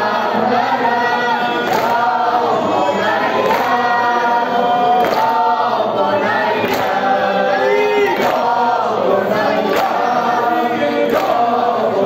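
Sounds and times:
crowd of men chanting in unison: 0.0s - 12.0s.

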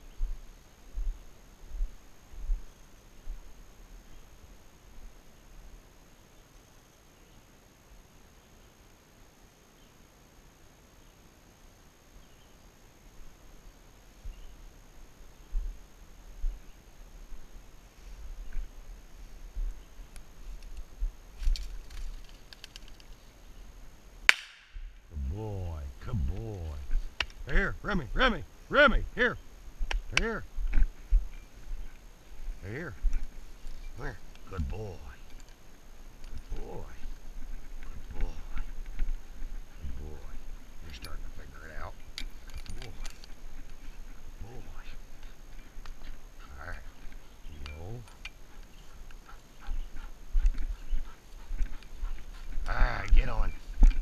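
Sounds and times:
brush rustling: 17.4s - 27.5s, 29.4s - 54.0s
dog breathing: 42.3s - 54.0s.

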